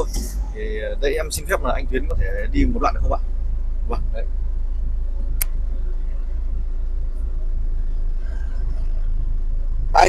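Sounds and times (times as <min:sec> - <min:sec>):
diesel truck engine droning: 0:00.0 - 0:10.0.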